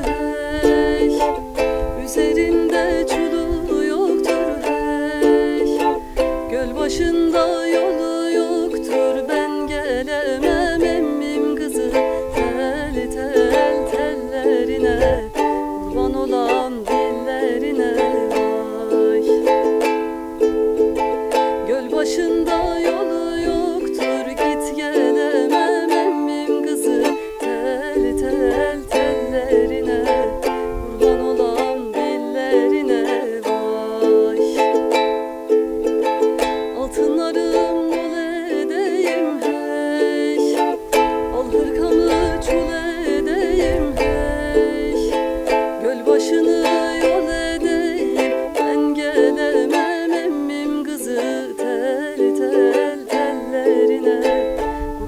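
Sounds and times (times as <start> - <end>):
ukulele strumming: 0.0 - 55.0
woman singing folk song: 0.0 - 55.0.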